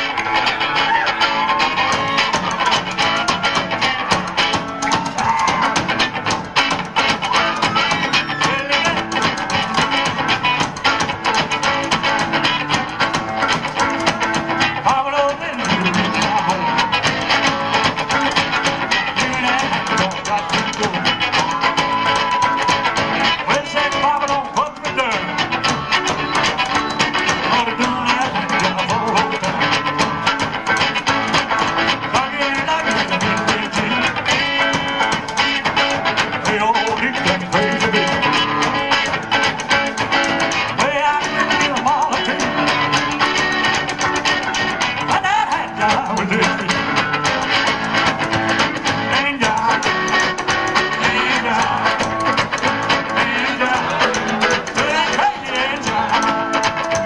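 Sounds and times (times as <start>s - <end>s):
drums: 0.0s - 57.0s
electric guitar: 0.0s - 57.0s
upright bass: 0.0s - 57.0s.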